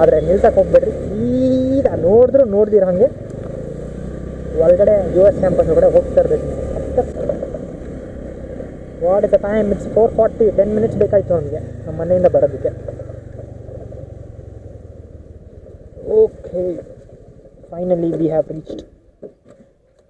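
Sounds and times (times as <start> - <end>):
person speaking: 0.0 - 3.2, 4.5 - 7.4, 9.0 - 13.1, 17.7 - 18.9
scooter engine running: 0.0 - 18.6.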